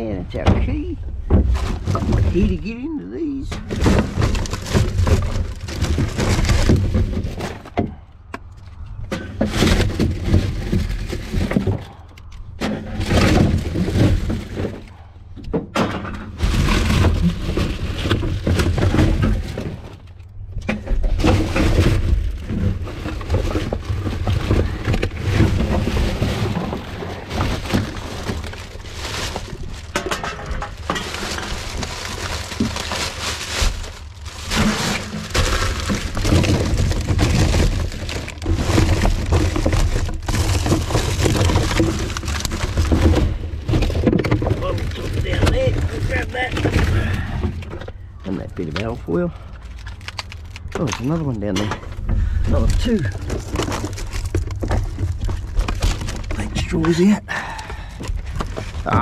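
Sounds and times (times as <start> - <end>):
rubbish crinkling and rustling: 0.0 - 59.0.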